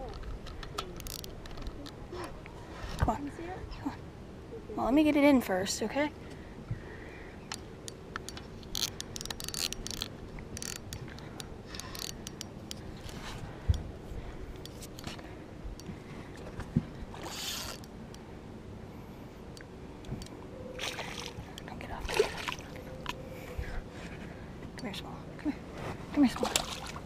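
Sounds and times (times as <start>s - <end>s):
light reel clicks: 0.1s - 2.0s, 7.5s - 13.2s
fishing reel whirring: 8.7s - 13.1s, 17.2s - 17.9s.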